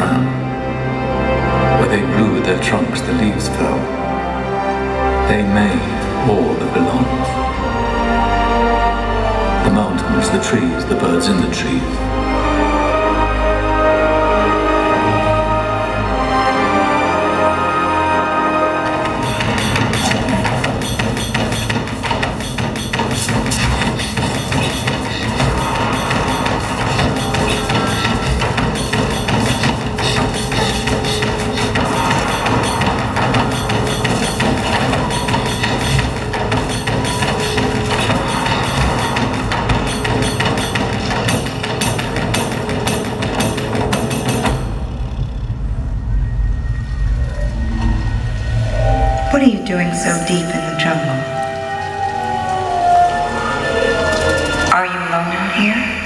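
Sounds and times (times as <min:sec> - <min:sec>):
soundtrack music over loudspeakers: 0:00.0 - 0:44.9, 0:47.8 - 0:56.0
steady drum beat: 0:18.8 - 0:44.8
low rumble: 0:44.6 - 0:52.3.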